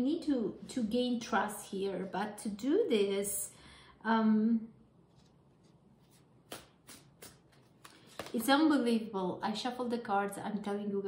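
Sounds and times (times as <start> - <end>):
cards being shuffled: 5.1 - 8.5.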